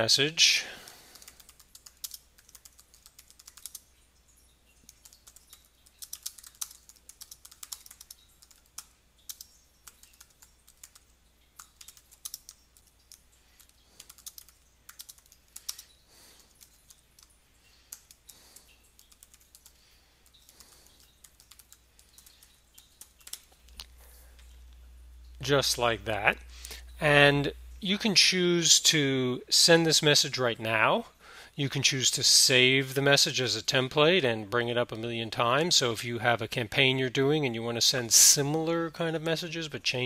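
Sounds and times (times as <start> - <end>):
computer keyboard typing: 0.8 - 3.9, 4.8 - 24.6.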